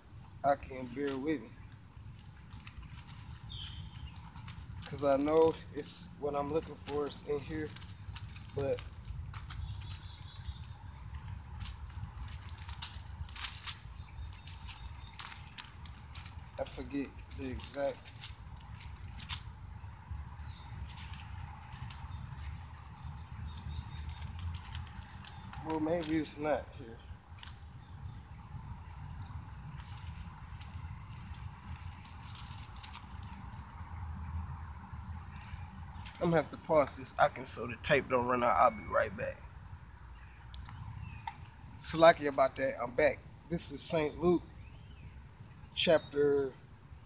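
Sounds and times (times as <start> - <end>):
insects chirring: 0.0 - 47.0.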